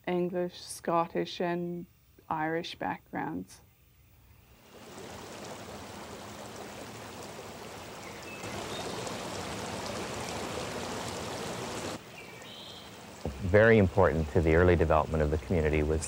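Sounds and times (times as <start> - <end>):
creek water rippling over rocks: 4.7 - 14.7.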